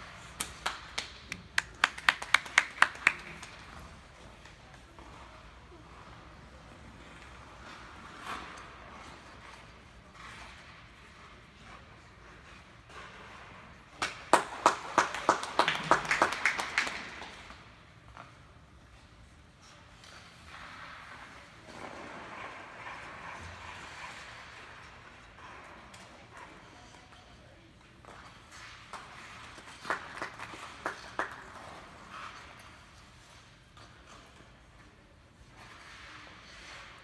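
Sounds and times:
hand claps: 0:00.4 - 0:03.6, 0:14.0 - 0:17.6, 0:29.6 - 0:31.6.

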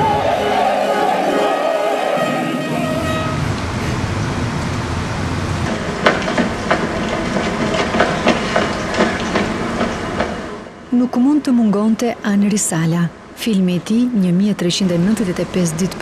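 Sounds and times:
low street rumble: 0:00.0 - 0:16.0.

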